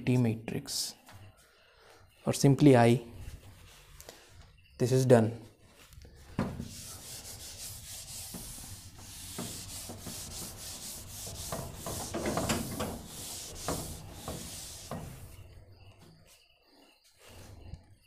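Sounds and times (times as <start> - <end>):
duster rubbing a whiteboard: 6.2 - 16.3.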